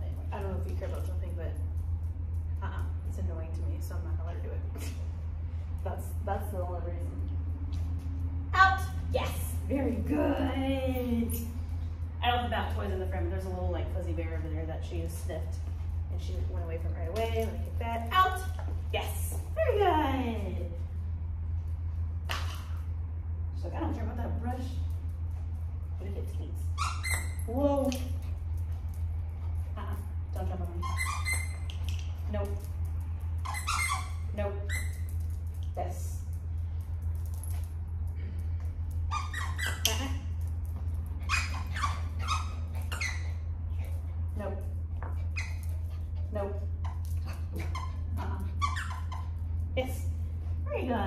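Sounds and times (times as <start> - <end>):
low hum: 0.0 - 51.0.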